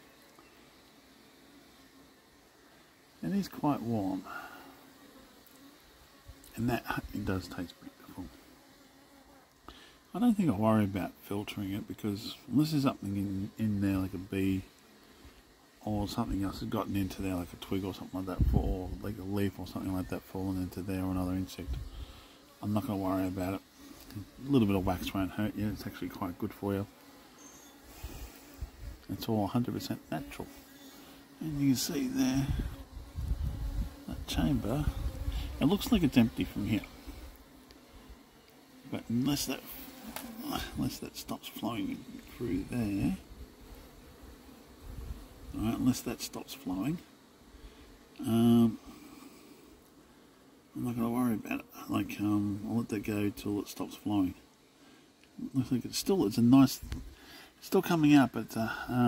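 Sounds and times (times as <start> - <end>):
bees buzzing: 0.0 - 59.0
faint hiss: 0.0 - 59.0.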